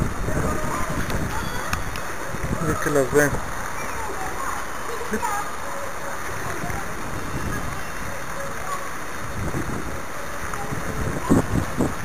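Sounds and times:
wind buffeting microphone: 0:00.0 - 0:04.4, 0:06.2 - 0:12.0.

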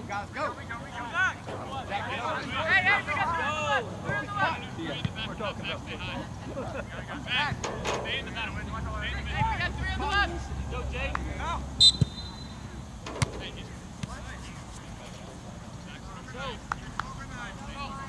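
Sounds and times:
distant shouts of players: 0:00.4 - 0:05.7
referee's whistle blast: 0:11.8 - 0:12.7
ball kicks: 0:13.0 - 0:14.3.

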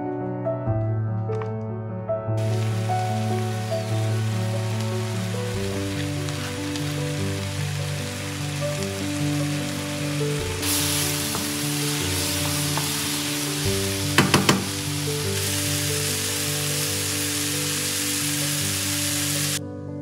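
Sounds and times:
soft background music: 0:00.0 - 0:20.0
food sizzling in a frying pan: 0:02.4 - 0:19.6.

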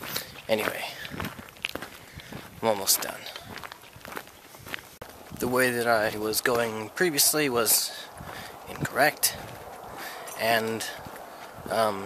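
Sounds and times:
footsteps on dry ground: 0:00.0 - 0:12.0.

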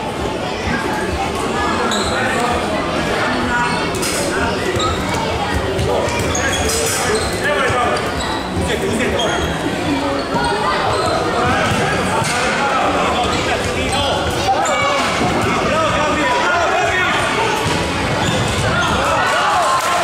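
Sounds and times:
children and spectators' voices: 0:00.0 - 0:20.0.

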